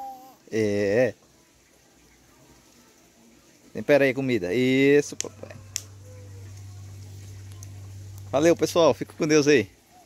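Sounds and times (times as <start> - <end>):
faint background hiss: 0.0 - 10.0
steady low hum: 4.5 - 9.8.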